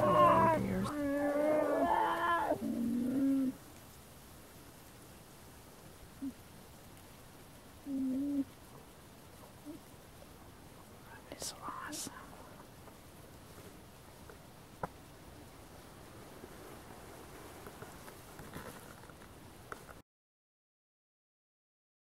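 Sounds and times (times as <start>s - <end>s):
low steady hums: 0.0s - 18.1s.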